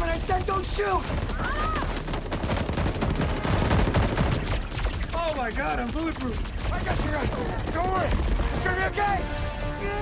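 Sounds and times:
automatic rifle fire: 1.2s - 7.3s.

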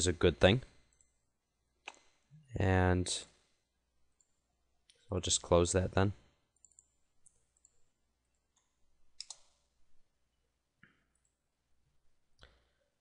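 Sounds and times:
computer mouse clicks: 1.8s - 2.1s, 6.6s - 7.8s, 8.5s - 9.6s.

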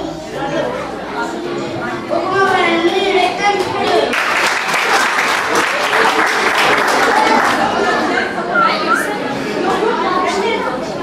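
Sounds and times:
audience chatter: 0.0s - 11.0s.

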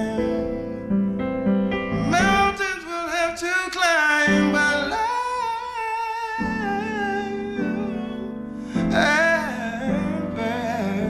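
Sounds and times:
wordless singing with vibrato: 0.0s - 0.9s, 1.8s - 11.0s
piano and guitar ballad: 0.0s - 11.0s.

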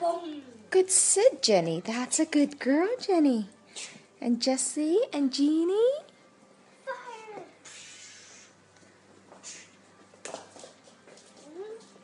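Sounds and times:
breathy hiss: 7.6s - 8.6s, 9.3s - 9.8s.

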